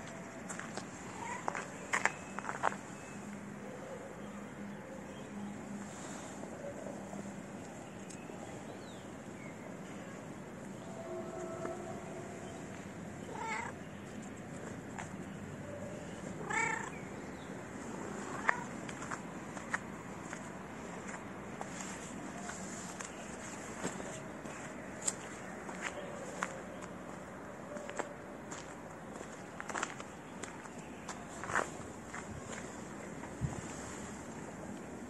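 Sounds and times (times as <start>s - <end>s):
cat meowing: 13.3s - 13.7s, 16.4s - 16.9s
footsteps on gritty concrete: 27.8s - 33.4s.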